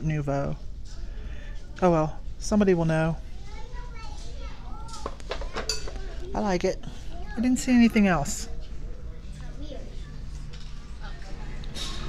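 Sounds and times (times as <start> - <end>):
children chattering: 3.4 - 7.7, 8.4 - 11.8.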